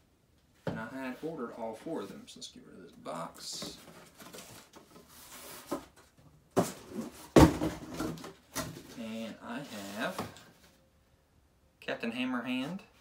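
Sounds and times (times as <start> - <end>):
cardboard scraping and rubbing: 3.8 - 6.0.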